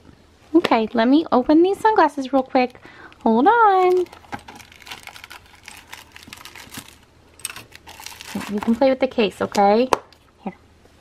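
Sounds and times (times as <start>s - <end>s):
packaging rustling: 3.6s - 8.9s.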